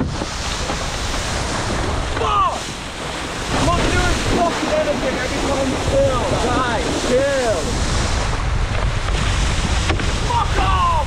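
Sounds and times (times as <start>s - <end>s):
water spray rushing: 0.0s - 11.0s
wind buffeting microphone: 0.0s - 11.0s.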